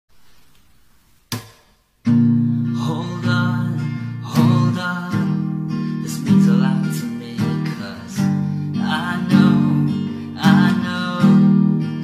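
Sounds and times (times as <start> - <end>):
acoustic guitar chords strummed: 2.0 - 12.0.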